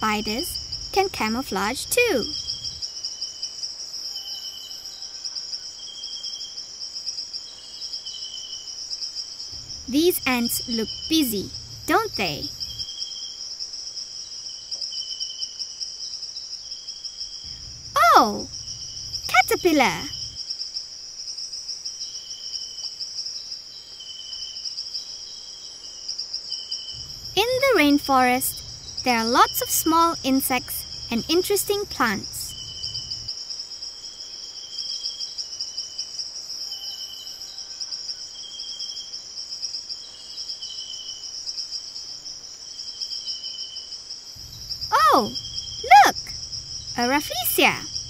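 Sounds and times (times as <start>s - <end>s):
insects chirring: 0.0s - 48.0s
lower insect call: 0.0s - 48.0s.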